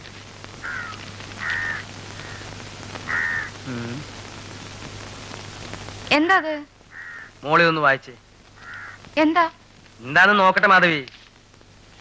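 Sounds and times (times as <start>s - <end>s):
background hiss: 0.0s - 12.0s
crows cawing: 0.6s - 3.7s, 6.9s - 7.4s, 8.6s - 9.1s.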